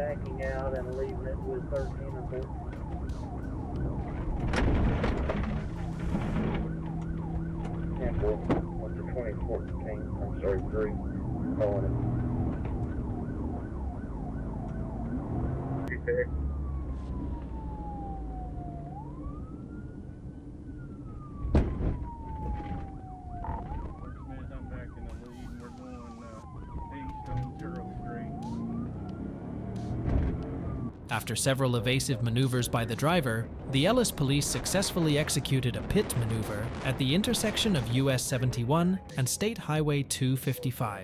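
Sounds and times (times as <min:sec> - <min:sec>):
engine and road noise: 0:00.0 - 0:41.0
police siren: 0:00.0 - 0:41.0.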